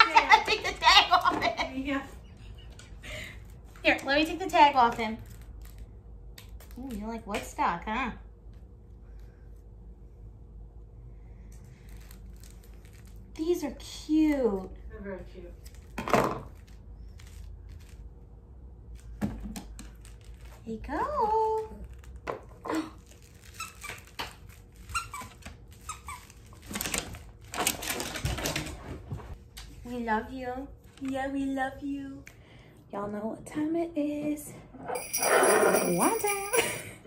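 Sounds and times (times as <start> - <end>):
low steady room hum: 0.0 - 37.0
rustling and crinkling packaging: 4.8 - 7.1, 11.6 - 13.6, 15.6 - 29.8
squeaky toy squeaks: 23.4 - 26.6.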